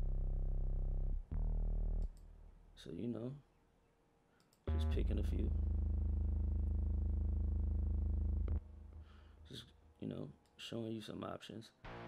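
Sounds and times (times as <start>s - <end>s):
buzzing synth bass note: 0.0s - 2.1s, 4.7s - 8.8s
small click: 2.0s - 2.3s.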